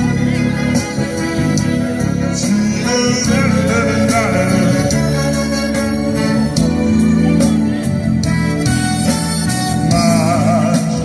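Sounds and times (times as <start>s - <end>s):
man singing through speaker: 0.0s - 8.1s, 9.4s - 11.0s
instrumental backing music: 0.0s - 11.0s.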